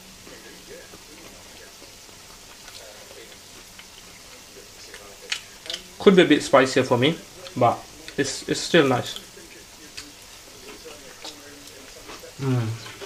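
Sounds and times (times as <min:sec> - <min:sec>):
oil sizzling in a frying pan: 0:00.0 - 0:12.4.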